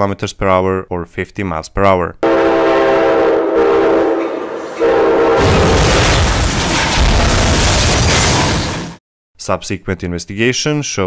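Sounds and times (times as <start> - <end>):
train horn chord: 2.2 - 5.8
train crash: 2.2 - 9.0.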